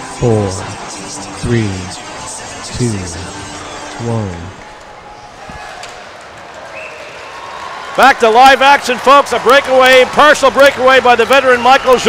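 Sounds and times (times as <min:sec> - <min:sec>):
murmur of crowd: 0:00.0 - 0:07.7.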